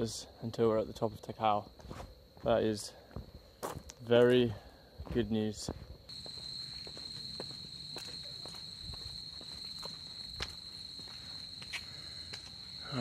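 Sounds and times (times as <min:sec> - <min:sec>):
footsteps on a trail: 0:01.7 - 0:13.0
high-pitched insect trill: 0:06.1 - 0:13.0.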